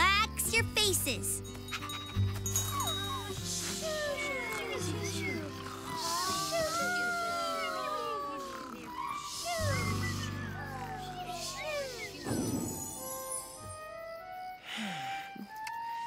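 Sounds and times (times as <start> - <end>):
soft background music: 0.0 - 16.0
chirping and whistling animal calls: 1.7 - 13.1.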